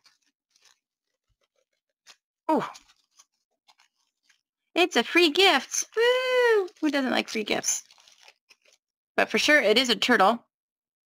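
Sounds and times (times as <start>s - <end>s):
plastic bag crinkling: 0.0s - 9.4s.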